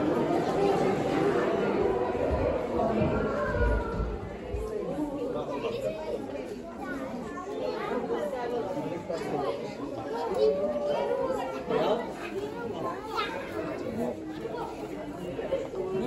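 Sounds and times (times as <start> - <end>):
chatter of voices: 0.0 - 16.0.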